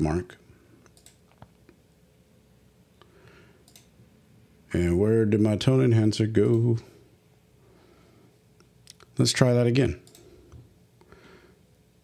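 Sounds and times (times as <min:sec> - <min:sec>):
computer mouse clicks: 0:00.8 - 0:01.8, 0:03.0 - 0:03.9, 0:10.0 - 0:10.6.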